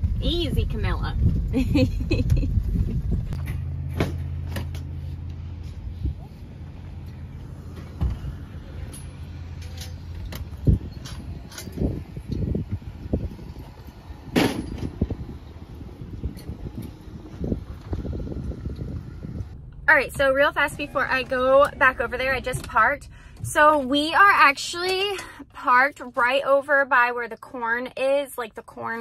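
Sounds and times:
car engine and road noise: 0:00.0 - 0:29.0.

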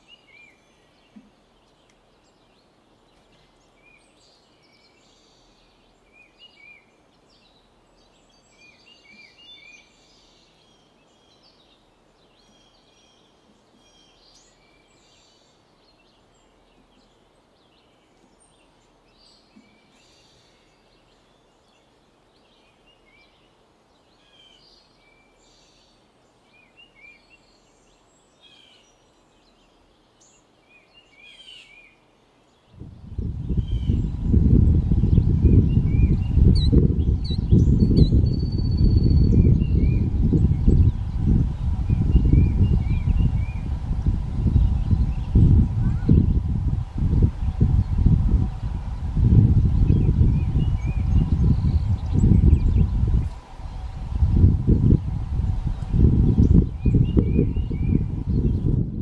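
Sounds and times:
birds chirping: 0:00.0 - 0:59.0
outdoor background hiss: 0:00.0 - 0:59.0.

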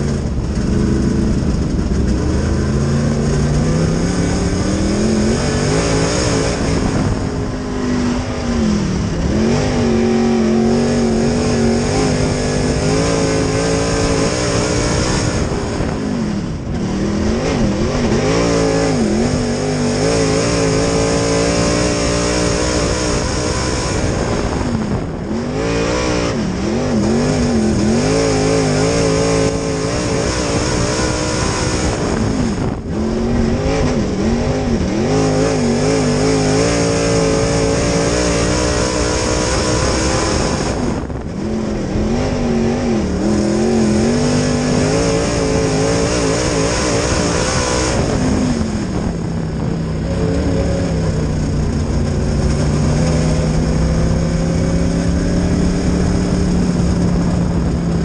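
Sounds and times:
race car engine: 0:00.0 - 0:58.0.

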